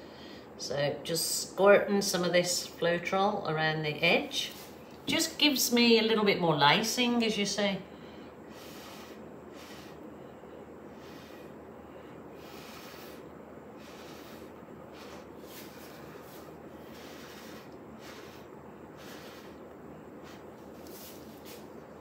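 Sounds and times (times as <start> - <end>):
breath puffs through a metal straw: 8.5 - 10.1, 10.9 - 11.6, 12.3 - 19.6.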